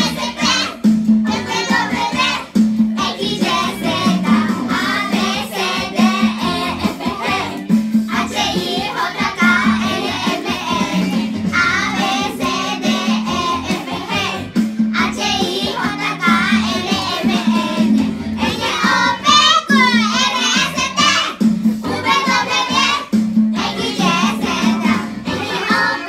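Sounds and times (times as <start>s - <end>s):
children singing together: 0.0s - 26.0s.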